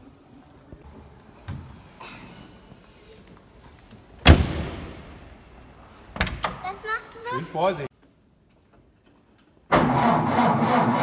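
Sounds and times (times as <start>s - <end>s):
door slamming with echo: 4.2s - 5.2s.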